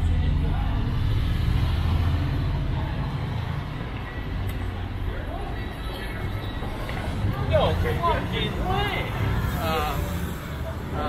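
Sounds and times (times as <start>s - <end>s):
street noise: 0.0s - 11.0s
vehicle engine rumble passing: 0.0s - 11.0s.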